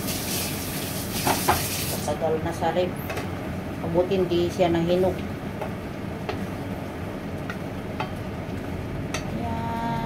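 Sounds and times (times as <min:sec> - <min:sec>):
steady low hum: 0:02.0 - 0:10.0.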